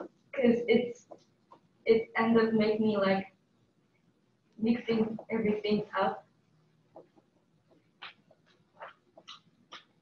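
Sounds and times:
stylus scratching on glass screen: 4.6 - 10.0.

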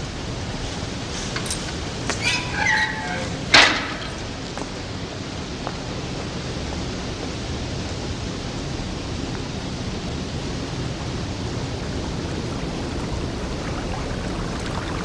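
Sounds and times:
steady rushing noise: 3.3 - 15.0.

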